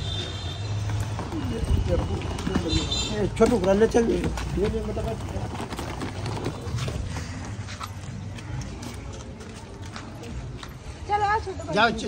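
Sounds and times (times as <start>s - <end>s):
footsteps on dirt: 0.0s - 11.0s.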